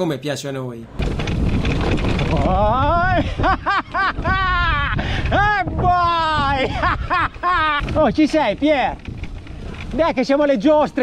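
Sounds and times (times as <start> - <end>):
wind: 0.0 - 11.0
bike tyres rumbling on dirt: 1.0 - 11.0
rider whooping and hollering: 2.4 - 8.2.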